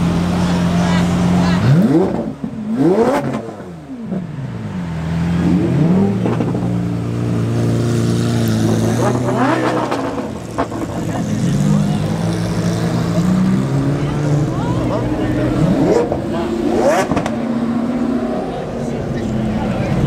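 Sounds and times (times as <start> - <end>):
car engines revving: 0.0 - 20.0.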